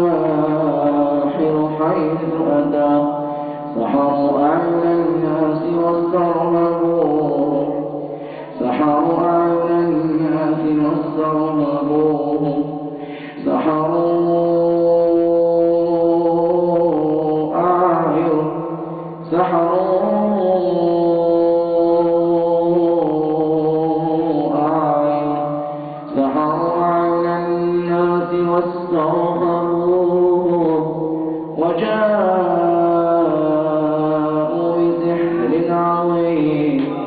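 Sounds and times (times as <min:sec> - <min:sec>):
man chanting verses: 0:00.0 - 0:37.0.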